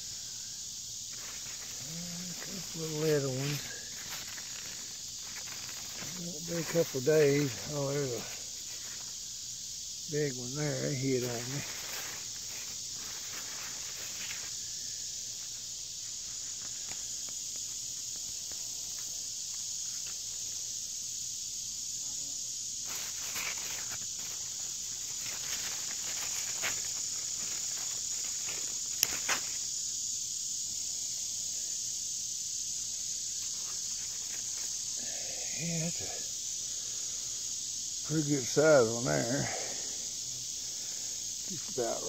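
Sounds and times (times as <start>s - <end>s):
leaves rustling: 0.0s - 21.3s, 22.7s - 42.0s
high-pitched insect chorus: 0.0s - 42.0s.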